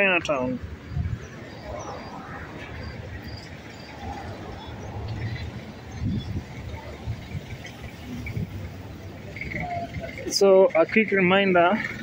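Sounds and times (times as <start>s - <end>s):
low uneven street rumble: 0.0s - 12.0s.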